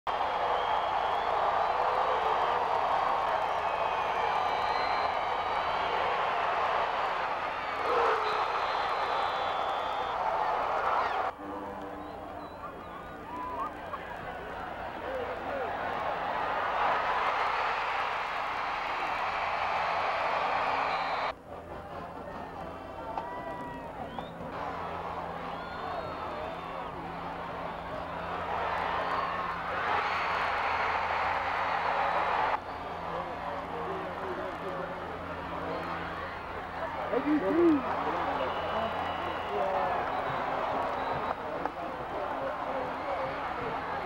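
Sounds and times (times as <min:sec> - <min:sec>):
stadium crowd cheering: 0:00.1 - 0:44.0.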